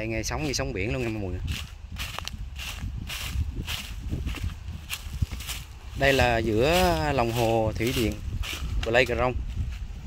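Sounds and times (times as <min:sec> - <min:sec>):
footsteps on dry leaves: 0:00.3 - 0:10.0.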